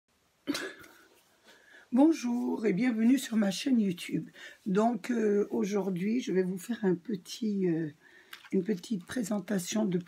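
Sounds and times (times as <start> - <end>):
short cough: 0.5 - 1.1
quiet breath: 1.1 - 2.0, 4.3 - 4.7, 8.0 - 8.5
person speaking: 1.8 - 10.0.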